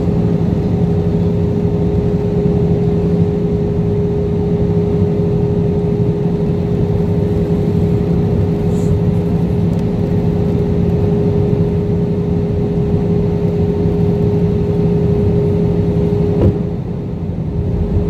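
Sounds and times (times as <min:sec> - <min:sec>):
constant low hum: 0:00.0 - 0:18.0
jet engines and airflow rushing: 0:00.0 - 0:18.0.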